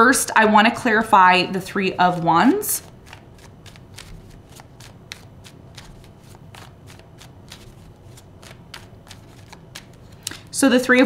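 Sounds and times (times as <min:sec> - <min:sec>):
cards being shuffled: 0:02.8 - 0:10.6.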